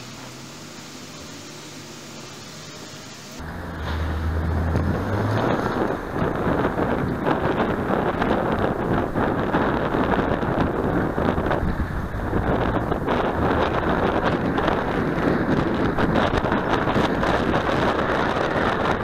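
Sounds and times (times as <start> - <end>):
road traffic: 0.0 - 19.0
wind buffeting microphone: 3.4 - 19.0.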